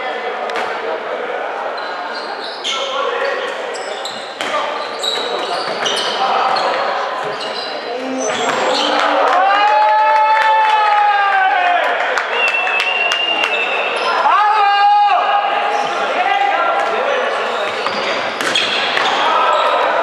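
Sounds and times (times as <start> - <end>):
shouts echoing in a hall: 0.0 - 20.0
sneakers squeaking: 1.7 - 9.2, 13.5 - 14.3, 17.3 - 20.0.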